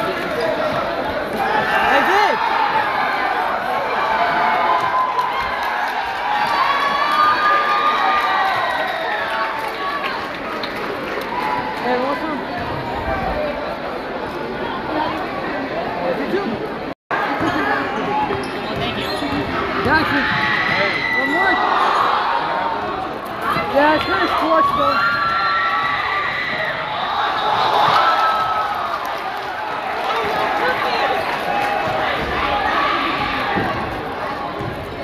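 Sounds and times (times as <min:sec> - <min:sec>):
crowd chattering and cheering: 0:00.0 - 0:35.0
basketball bouncing on court: 0:34.6 - 0:35.0.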